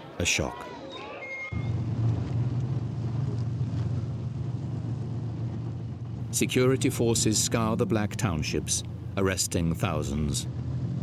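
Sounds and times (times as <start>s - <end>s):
heavy vehicle engines rumbling: 1.6s - 11.0s.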